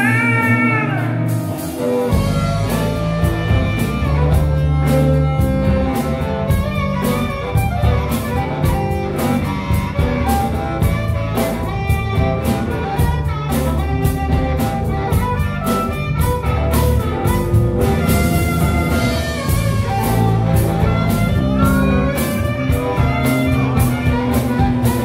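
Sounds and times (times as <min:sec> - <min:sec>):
bass guitar: 0:00.0 - 0:25.0
electric guitars: 0:00.0 - 0:25.0
harmonica solo: 0:00.0 - 0:25.0
steady drum beat: 0:00.0 - 0:25.0.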